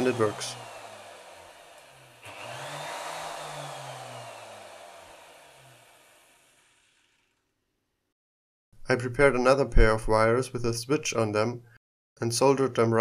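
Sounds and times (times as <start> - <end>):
router motor whining: 0.0 - 7.4.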